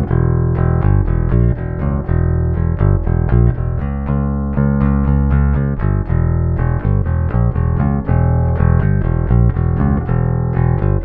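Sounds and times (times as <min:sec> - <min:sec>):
electric bass guitar picked notes: 0:00.0 - 0:11.0.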